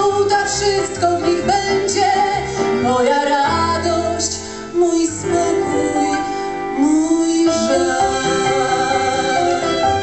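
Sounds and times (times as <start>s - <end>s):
instrumental backing track: 0.0s - 10.0s
woman singing: 0.0s - 10.0s.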